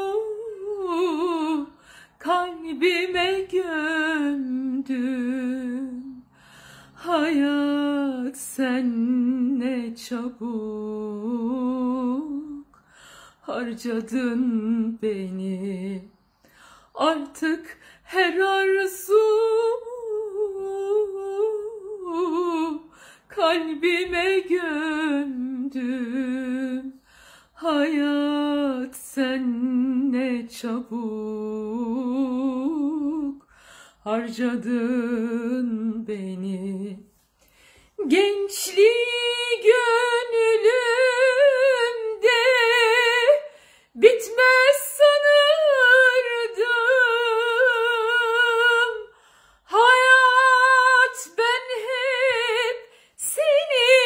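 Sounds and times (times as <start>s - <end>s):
woman singing unaccompanied: 0.0s - 6.3s, 6.9s - 12.8s, 13.4s - 16.2s, 16.8s - 37.1s, 38.0s - 54.0s.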